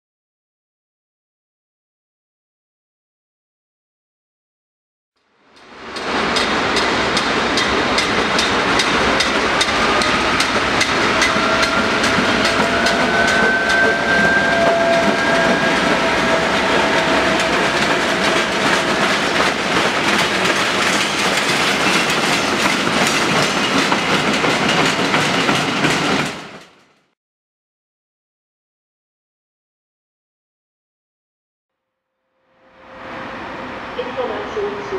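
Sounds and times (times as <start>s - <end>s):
diesel locomotive engine drone: 5.4s - 26.8s, 32.5s - 34.9s
thin squeal: 9.7s - 19.2s
wheels clicking over rail joints: 17.0s - 26.8s.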